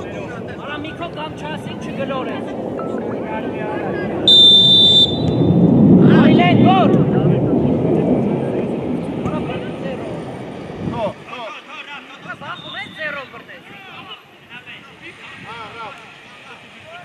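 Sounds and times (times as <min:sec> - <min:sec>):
steady rumbling background: 0:00.0 - 0:11.2
referee whistle blast: 0:04.3 - 0:05.6, 0:12.5 - 0:13.4.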